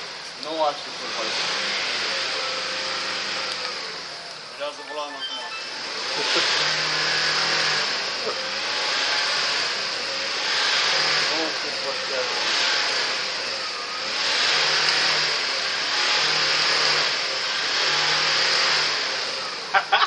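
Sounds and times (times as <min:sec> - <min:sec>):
engine revving hard: 0:00.0 - 0:04.6, 0:05.6 - 0:20.0.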